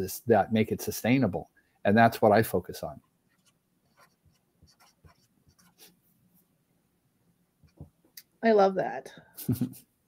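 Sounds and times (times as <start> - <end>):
pen scratching on paper: 3.3 - 5.9.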